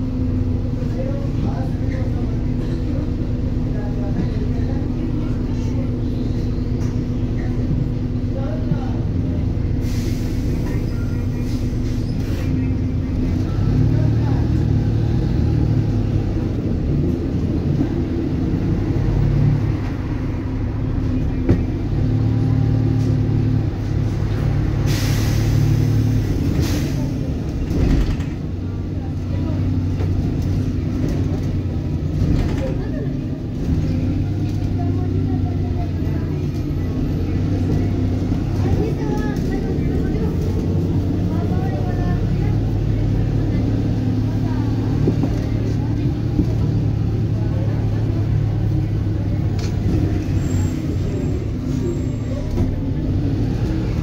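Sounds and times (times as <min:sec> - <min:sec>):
bus diesel engine under load: 0:00.0 - 0:54.0.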